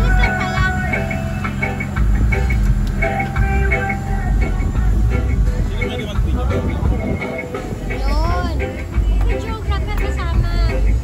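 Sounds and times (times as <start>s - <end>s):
background music: 0.0s - 11.0s
speedboat engine rumble: 0.0s - 11.0s
voices: 0.0s - 11.0s
wind: 0.0s - 11.0s.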